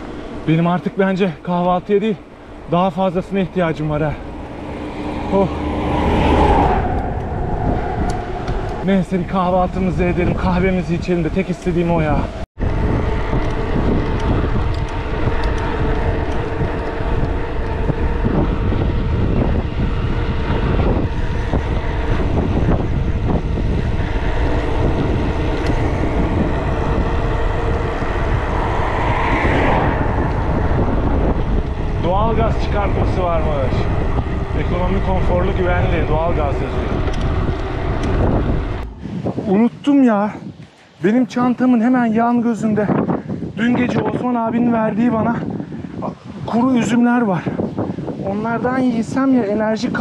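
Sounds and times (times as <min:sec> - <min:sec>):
bicycle tyres on asphalt: 0:00.0 - 0:44.0
wind rushing over microphone: 0:00.0 - 0:50.0.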